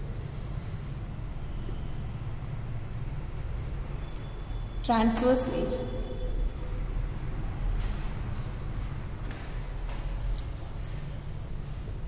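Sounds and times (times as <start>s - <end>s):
insect trill: 0.0s - 12.0s
low background hum: 0.0s - 12.0s.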